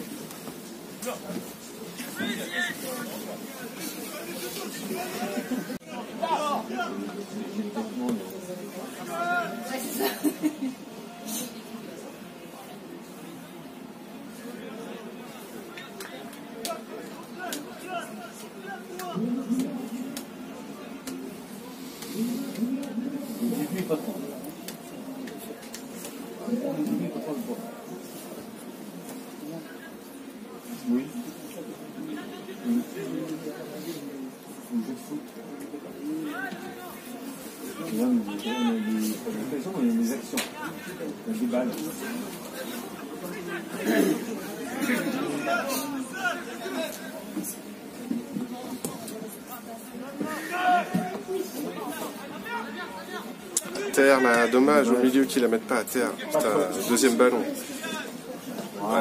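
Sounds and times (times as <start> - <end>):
indistinct chatter of voices: 0.0 - 59.0.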